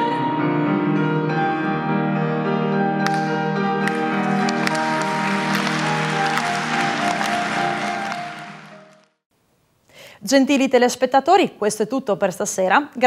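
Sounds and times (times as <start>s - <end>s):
operatic duet with piano: 0.0s - 9.2s
audience applause: 3.8s - 9.2s.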